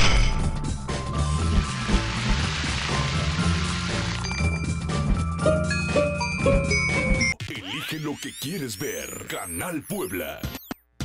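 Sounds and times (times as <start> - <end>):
upbeat jingle music: 4.2 - 7.4.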